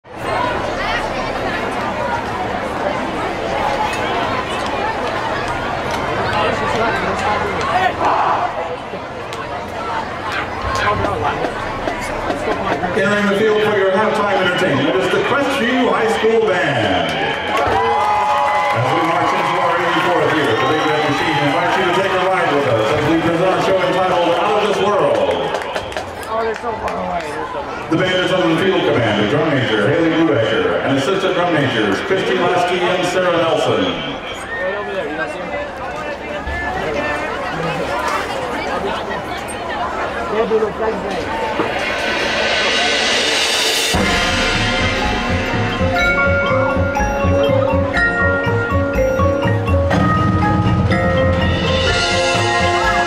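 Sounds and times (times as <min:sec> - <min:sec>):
stadium crowd chatter: 0:00.0 - 0:53.0
marching band playing: 0:10.1 - 0:26.4, 0:40.5 - 0:53.0
cymbal wash: 0:41.8 - 0:47.2.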